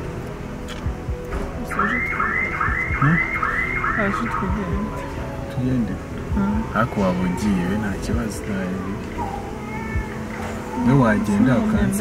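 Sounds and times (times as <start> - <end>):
electronic alarm rising and falling: 1.7 - 5.1.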